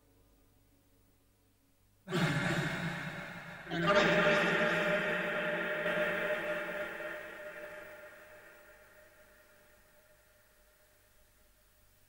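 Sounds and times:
person sighing: 2.1 - 3.8.

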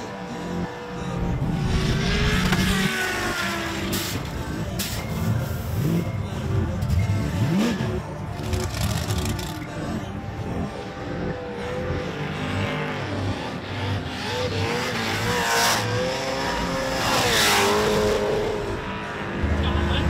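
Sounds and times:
car engines revving: 0.0 - 20.0
electronic background music: 0.0 - 20.0.

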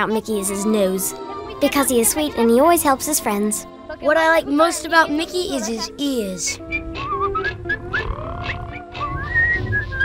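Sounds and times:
backing music: 0.0 - 10.0
person whistling a tune: 6.5 - 10.0.

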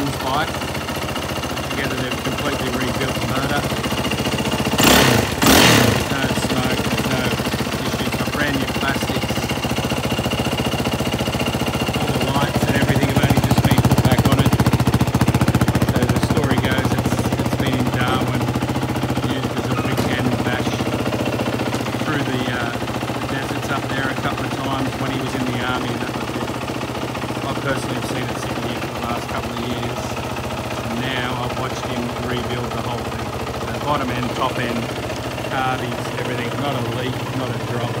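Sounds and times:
loud engine bursts: 0.0 - 38.0
motorcycle engine idling: 0.0 - 38.0.

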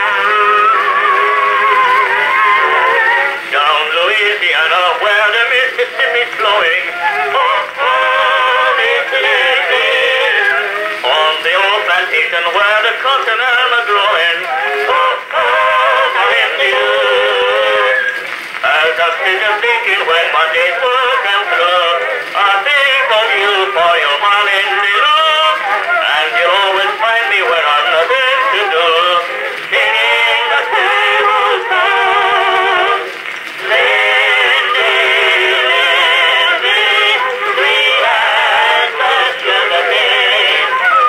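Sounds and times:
vocal quartet singing on phonograph: 0.0 - 41.0.

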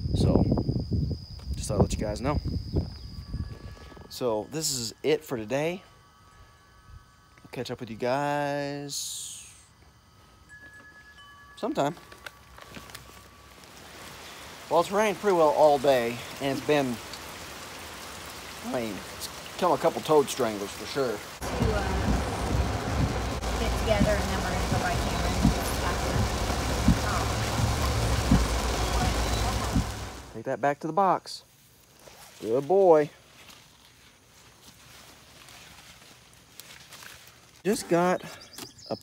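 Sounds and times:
soft hiss: 2.6 - 30.5
wind chime note ringing: 10.3 - 13.6
heavy rain on vehicle windshield: 13.7 - 30.4
engine and road hum: 21.2 - 30.4
windshield wiper thumps: 21.4 - 30.3.

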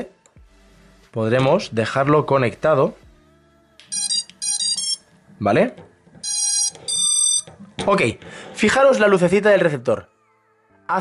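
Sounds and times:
long electronic drone motor beeps: 3.9 - 5.0, 6.2 - 7.5.

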